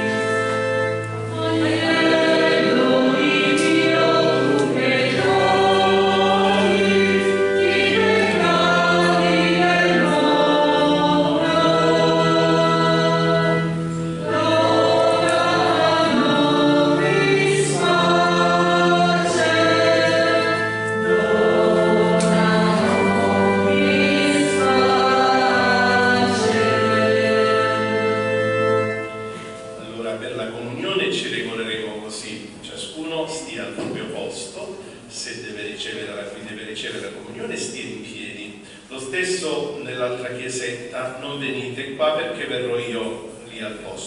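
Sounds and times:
choir singing a hymn: 0.0 - 31.4
sustained low accompaniment: 0.0 - 38.5.

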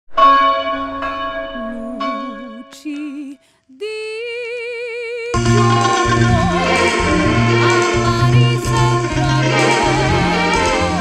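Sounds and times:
church bell ringing: 0.1 - 2.8, 5.4 - 11.0.

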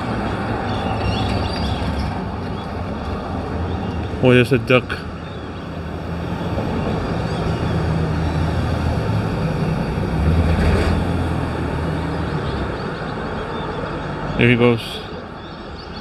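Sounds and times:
vehicle passing close: 0.0 - 15.4
traffic hum: 0.0 - 16.0.

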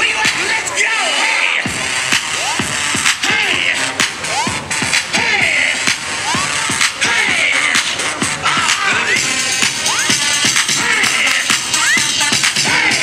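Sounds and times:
electronic dance music beat: 0.0 - 13.0.

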